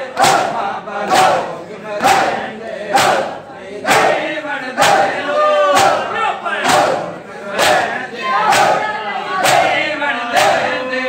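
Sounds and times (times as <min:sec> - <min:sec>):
men striking chests in unison: 0:00.0 - 0:10.8
men chanting: 0:00.0 - 0:11.0.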